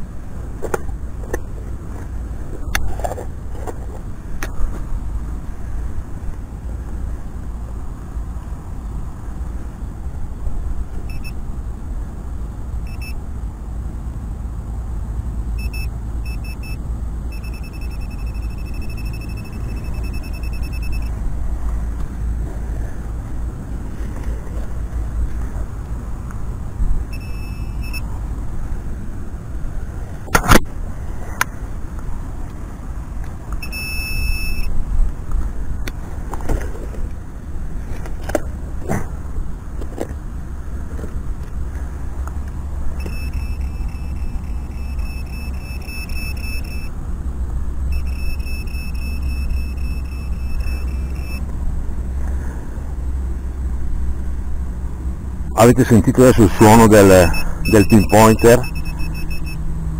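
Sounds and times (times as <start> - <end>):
metal detector beeping: 11.1 - 11.4, 12.8 - 13.2, 15.6 - 21.2, 27.1 - 28.1, 33.6 - 34.7, 43.0 - 46.9, 47.9 - 51.5, 55.5 - 59.6.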